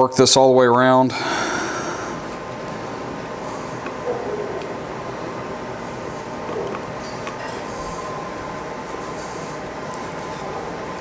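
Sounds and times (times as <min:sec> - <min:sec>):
faint workshop hum: 0:00.0 - 0:11.0.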